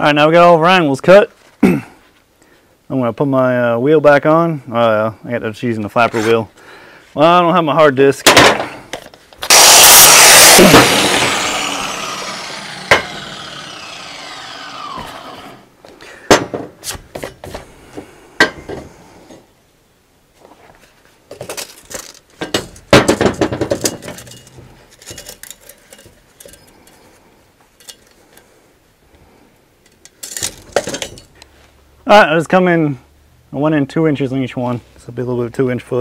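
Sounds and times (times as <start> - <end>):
angle grinder spinning down: 9.4 - 15.7.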